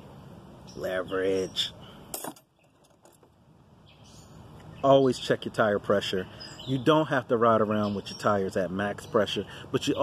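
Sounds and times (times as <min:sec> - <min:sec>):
hand tools clinking and rattling: 0:02.1 - 0:03.3.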